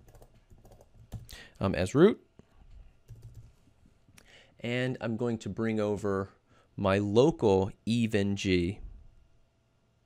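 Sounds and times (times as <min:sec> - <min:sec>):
computer keyboard typing: 0:00.0 - 0:01.3, 0:03.0 - 0:03.6.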